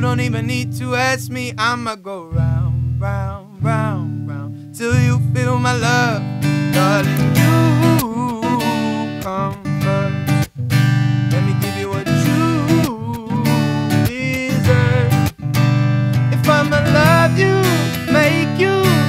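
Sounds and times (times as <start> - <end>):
man singing: 0.0 - 10.4, 11.3 - 15.4, 16.2 - 19.0
acoustic guitar strumming: 0.0 - 19.0.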